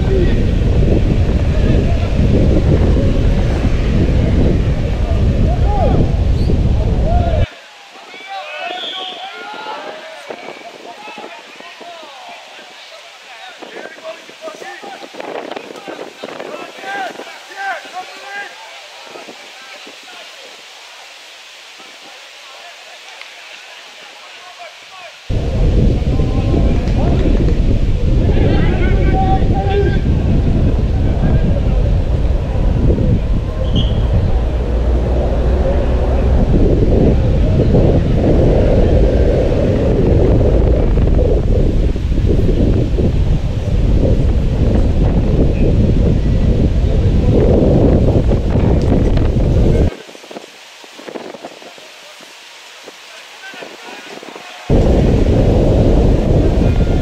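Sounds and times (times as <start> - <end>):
wind buffeting microphone: 0.0 - 7.5, 13.6 - 17.4, 25.3 - 51.8, 52.8 - 57.0.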